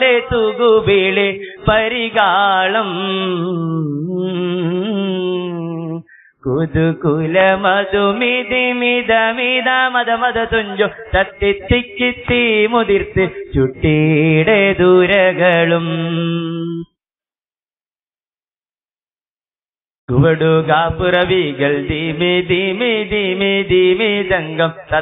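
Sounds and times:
solo voice chanting melody: 0:00.0 - 0:10.9, 0:11.6 - 0:17.0.

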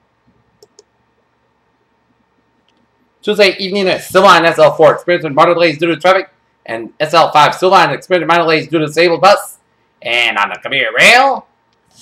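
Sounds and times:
faint computer clicks: 0:00.3 - 0:01.0, 0:02.6 - 0:02.9.

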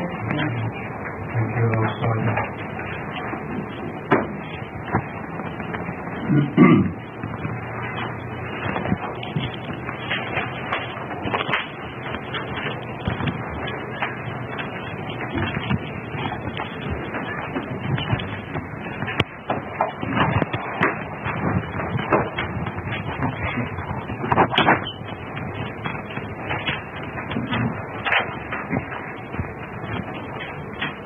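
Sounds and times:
steady recording hiss: 0:00.0 - 0:31.0
small clicks and rustles: 0:07.1 - 0:31.0.

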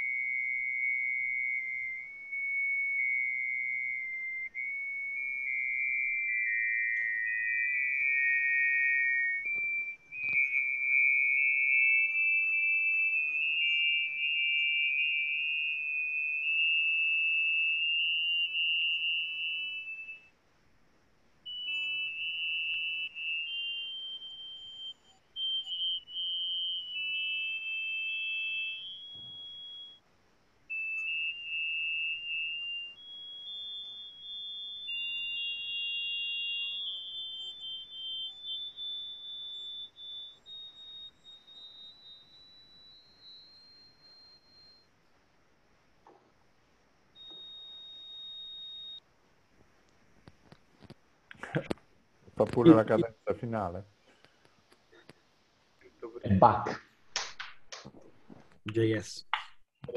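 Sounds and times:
high electronic tones: 0:00.0 - 0:20.3, 0:21.5 - 0:30.0, 0:30.7 - 0:44.8, 0:52.4 - 0:53.8.

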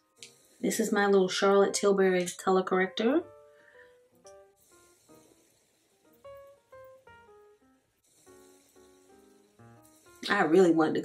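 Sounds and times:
plucked notes background music: 0:00.0 - 0:11.0.

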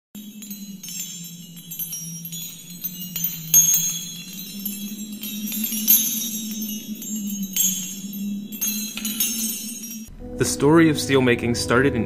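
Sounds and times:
high tinkling chimes: 0:00.2 - 0:10.2.

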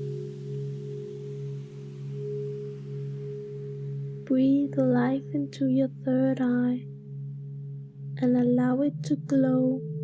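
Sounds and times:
meditation music drone: 0:00.0 - 0:10.0.

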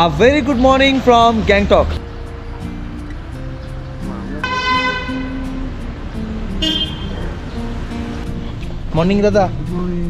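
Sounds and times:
background music: 0:00.0 - 0:10.0
vehicle horn: 0:04.4 - 0:05.7, 0:06.6 - 0:07.4.

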